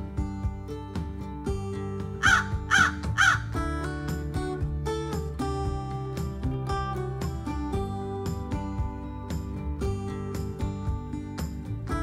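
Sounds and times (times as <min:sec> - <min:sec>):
background music: 0:00.0 - 0:12.0
crow cawing: 0:02.2 - 0:03.5.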